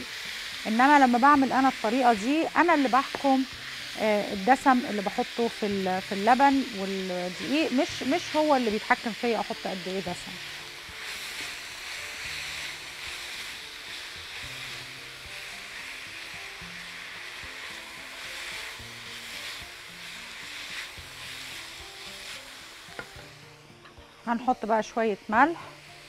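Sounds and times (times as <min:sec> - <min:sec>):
meat sizzling in frying pan: 0:00.0 - 0:26.0
soft background music: 0:00.0 - 0:26.0
spatula stirring in pan: 0:00.1 - 0:26.0.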